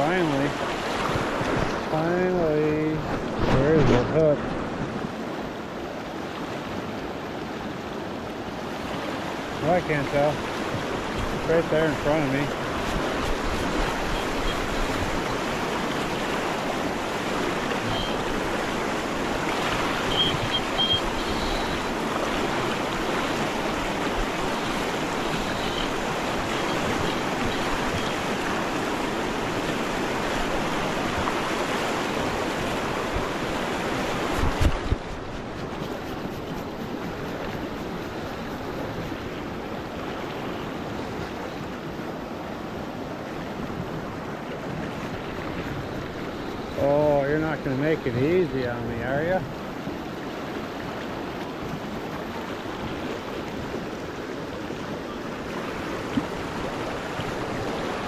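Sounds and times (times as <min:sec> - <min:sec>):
person's voice: 0:01.9 - 0:04.4, 0:46.8 - 0:49.5
river rapids rushing over rocks: 0:04.5 - 0:43.0.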